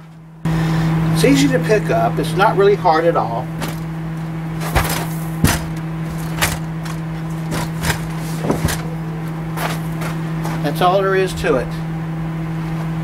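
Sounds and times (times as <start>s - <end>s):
steady low hum: 0.0s - 13.0s
metal scooter frame knocking and clattering: 4.6s - 9.0s.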